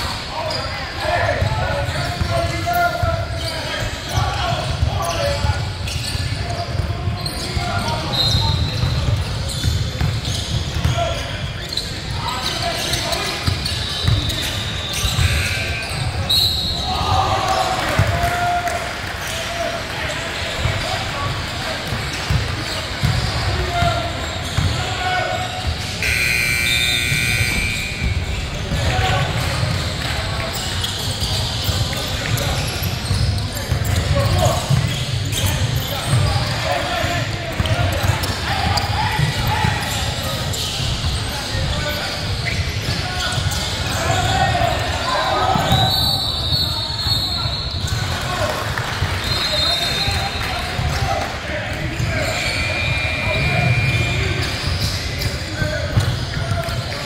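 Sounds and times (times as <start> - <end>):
sneaker squeaks: 0.0 - 18.2, 19.2 - 57.0.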